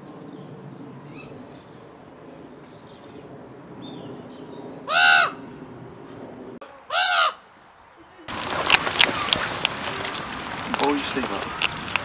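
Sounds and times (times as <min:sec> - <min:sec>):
raven croaking: 0:04.8 - 0:05.9
small birds chirping: 0:07.5 - 0:12.0.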